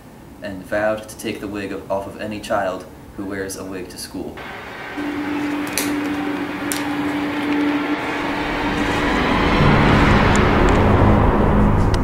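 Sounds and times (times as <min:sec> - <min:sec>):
low hum: 0:04.4 - 0:12.0
deep rumble: 0:08.0 - 0:12.0.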